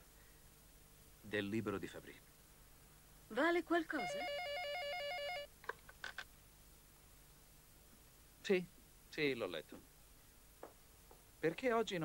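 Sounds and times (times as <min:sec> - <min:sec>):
telephone ringing trill: 0:04.0 - 0:05.5.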